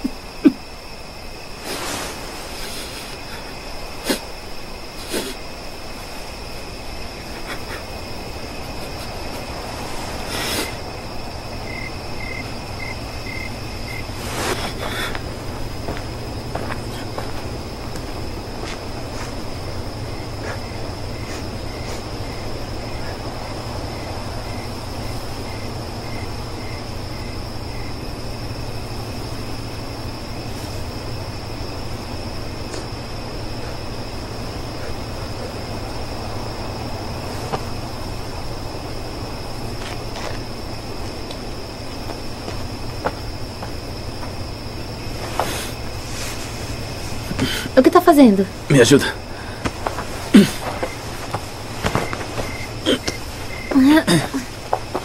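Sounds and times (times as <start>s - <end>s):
crickets droning: 0.0s - 55.0s
slow insect chirp: 0.0s - 55.0s.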